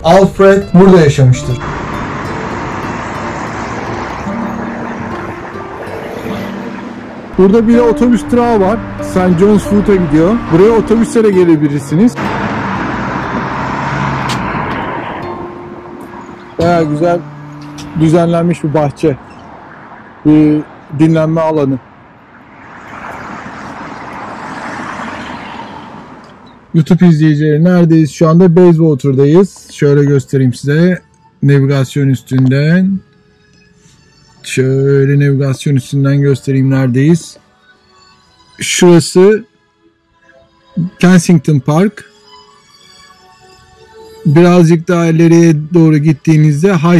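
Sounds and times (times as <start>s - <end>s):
road traffic hiss: 0.0s - 27.4s, 33.0s - 34.5s.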